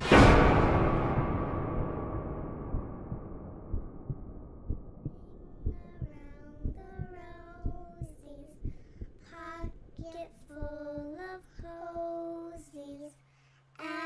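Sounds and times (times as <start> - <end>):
low rumble: 0.0 - 11.8
heartbeat-like thumps: 0.0 - 12.8.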